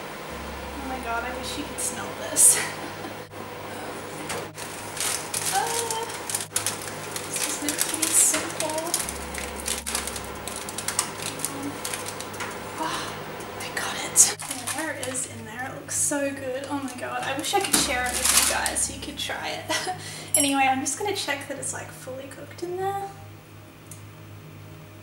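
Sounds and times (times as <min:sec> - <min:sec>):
person murmuring: 0:00.7 - 0:04.5, 0:11.2 - 0:11.9, 0:12.8 - 0:15.5
tea towel rustling: 0:01.0 - 0:19.1.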